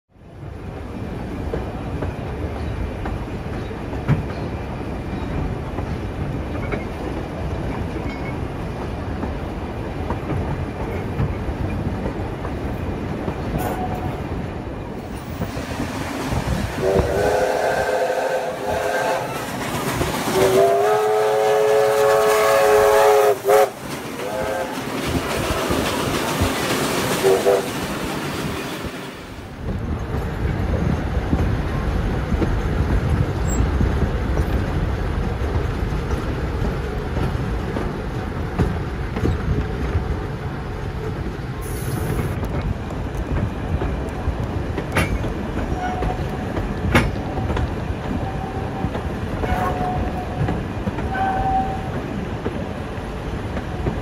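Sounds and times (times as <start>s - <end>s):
steam locomotive rumbling past: 0.2s - 54.0s
steam locomotive whistle: 16.8s - 19.5s, 20.3s - 24.9s, 27.2s - 27.8s, 45.7s - 46.2s, 48.2s - 50.4s, 51.1s - 52.0s.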